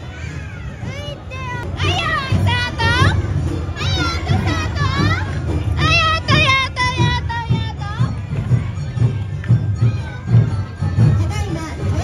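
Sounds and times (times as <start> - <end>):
crowd noise: 0.0 - 12.0
street-dance music with drum beat: 0.0 - 12.0.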